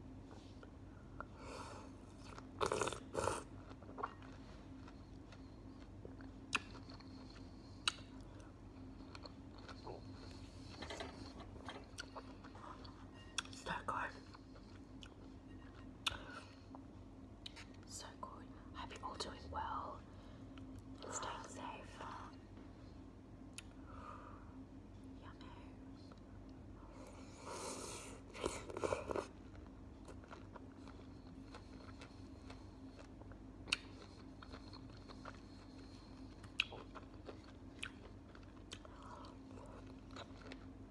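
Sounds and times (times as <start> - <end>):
chewing pineapple: 1.6 - 17.8, 26.0 - 40.9.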